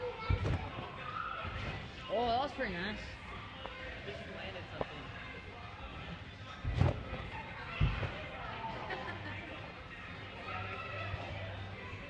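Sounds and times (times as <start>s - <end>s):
thumps on trampoline: 0.2s - 0.8s, 6.6s - 8.3s.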